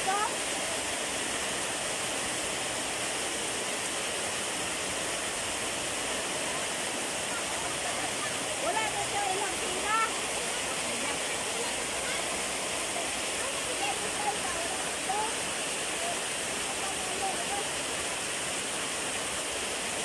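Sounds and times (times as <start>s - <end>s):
heavy rain falling: 0.0s - 20.0s.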